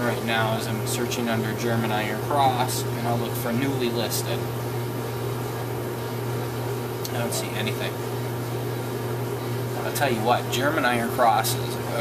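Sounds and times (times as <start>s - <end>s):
low machine hum: 0.0s - 12.0s.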